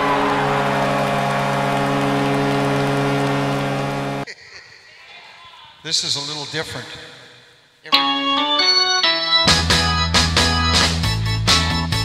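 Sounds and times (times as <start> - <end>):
horn-like alarm blare: 0.0 - 4.2.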